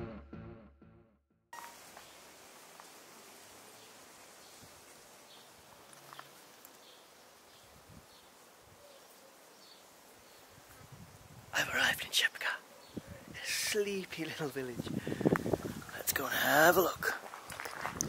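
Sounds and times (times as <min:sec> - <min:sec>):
background music: 0:00.0 - 0:01.1
low outdoor hiss: 0:01.6 - 0:17.4.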